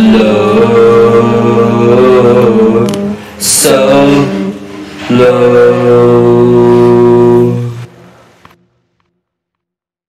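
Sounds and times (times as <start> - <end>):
solo voice singing: 0.0 - 7.9.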